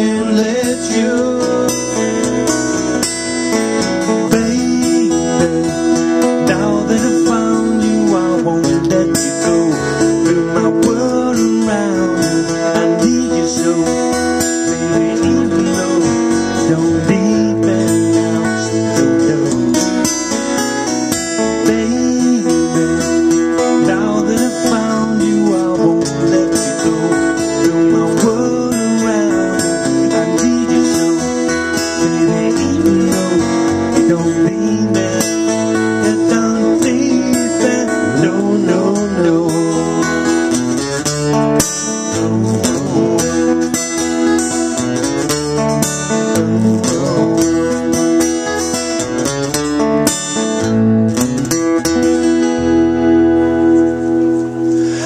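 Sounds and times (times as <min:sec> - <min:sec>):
person singing: 0:00.0 - 0:19.8, 0:21.2 - 0:40.6, 0:41.7 - 0:44.0, 0:45.5 - 0:48.1
second guitar: 0:00.0 - 0:55.0
strummed acoustic guitar: 0:00.0 - 0:55.0.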